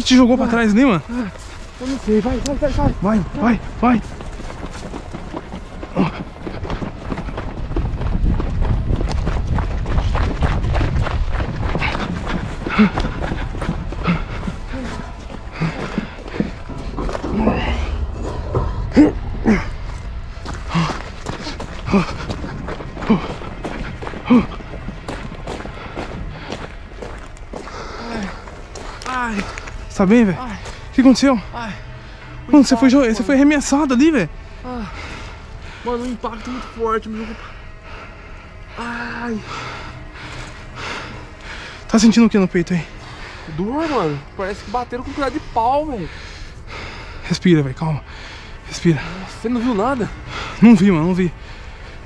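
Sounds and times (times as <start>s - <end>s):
hurried footsteps: 0.0s - 52.0s.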